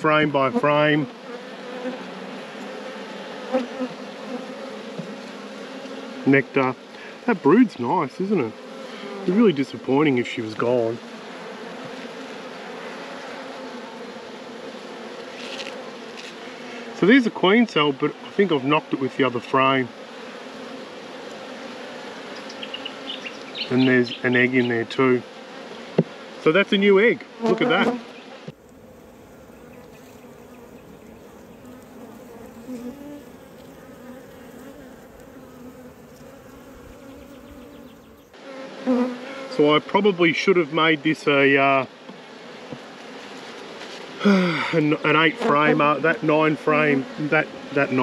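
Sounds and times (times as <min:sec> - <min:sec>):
bees buzzing: 0:00.0 - 0:48.0.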